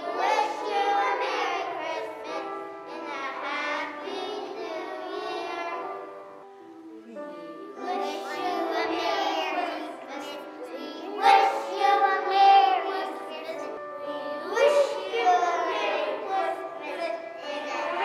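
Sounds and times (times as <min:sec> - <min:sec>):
young children singing: 0:00.0 - 0:18.0.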